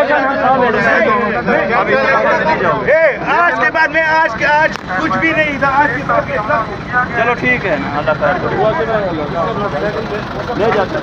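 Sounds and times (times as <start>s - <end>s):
men shouting: 0.0s - 11.0s.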